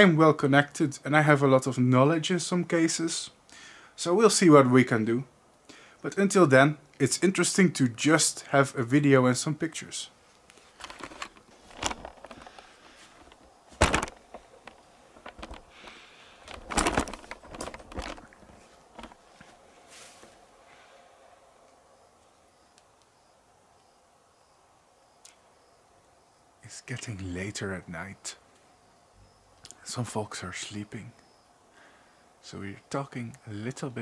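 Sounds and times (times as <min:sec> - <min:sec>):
camera handling knocks and rubs: 0:10.6 - 0:19.5.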